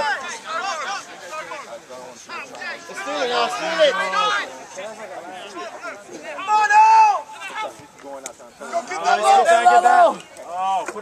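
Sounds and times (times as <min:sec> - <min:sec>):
crowd calling and shouting: 0:00.0 - 0:11.0.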